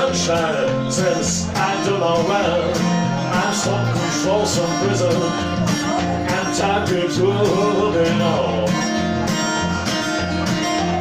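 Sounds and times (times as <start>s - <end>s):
acoustic guitar playing: 0.0s - 11.0s.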